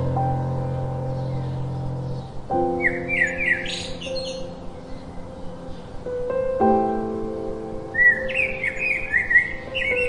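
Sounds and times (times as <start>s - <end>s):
soft background music: 0.0s - 10.0s
sparrow chirping: 0.4s - 6.0s, 8.0s - 10.0s.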